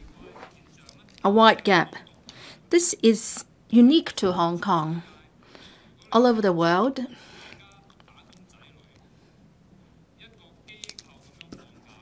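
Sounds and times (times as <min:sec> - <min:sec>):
faint background speech: 0:00.0 - 0:02.8, 0:07.0 - 0:12.0.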